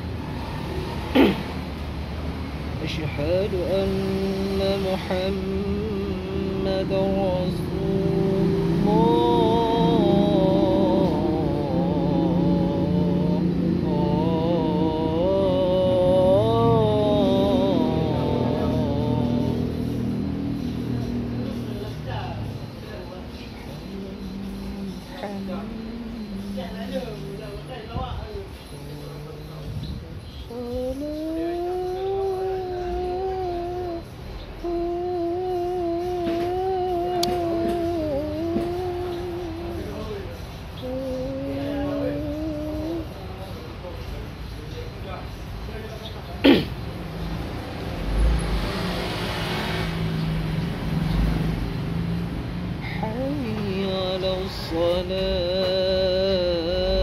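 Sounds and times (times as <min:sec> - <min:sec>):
man chanting call to prayer: 0:02.7 - 0:45.1, 0:52.9 - 0:57.0.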